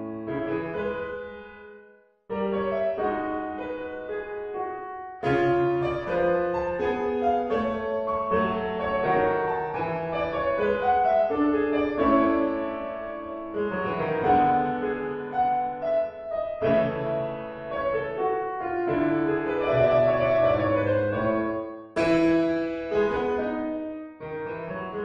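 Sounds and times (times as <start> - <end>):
solo piano ballad: 0.0 - 25.0.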